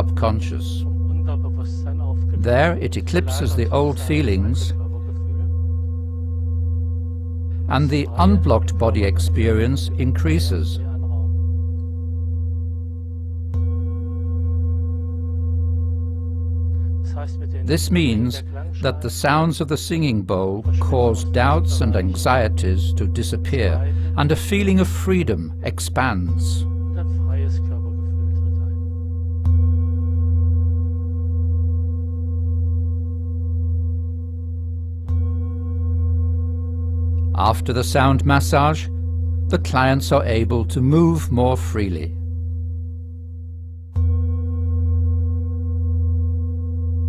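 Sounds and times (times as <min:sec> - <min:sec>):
singing bowl ringing: 0:00.0 - 0:47.0
singing bowl struck with mallet: 0:10.8 - 0:17.7, 0:20.3 - 0:24.1, 0:24.8 - 0:39.6, 0:42.1 - 0:47.0.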